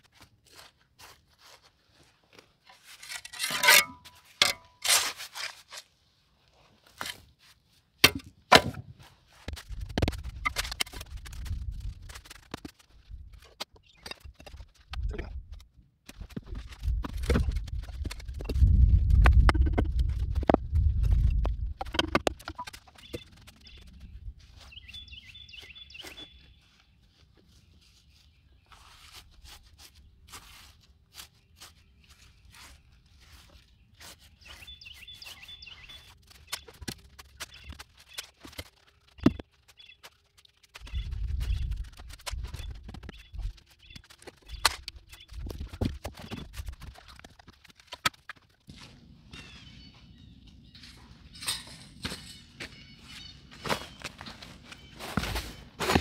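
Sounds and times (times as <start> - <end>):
stones knocking and scraping: 8.0 - 23.8, 36.2 - 48.8, 55.1 - 56.0.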